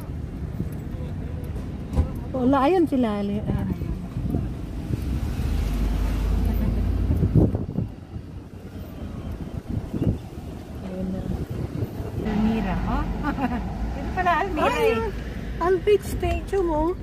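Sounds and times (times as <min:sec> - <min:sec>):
car engine and road rumble: 0:00.0 - 0:17.0.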